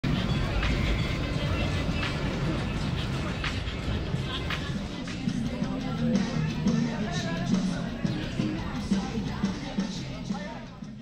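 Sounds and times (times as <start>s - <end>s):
music: 0.0s - 11.0s
voices: 0.1s - 11.0s.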